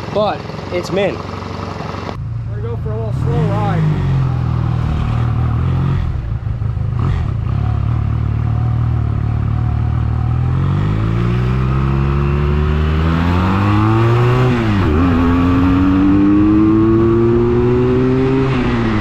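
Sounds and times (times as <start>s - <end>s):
motorcycle engine accelerating: 0.0s - 19.0s.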